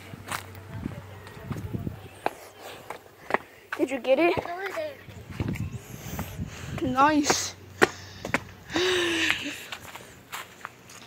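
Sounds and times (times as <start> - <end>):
footsteps on grass: 0.2 - 8.6, 9.7 - 11.0.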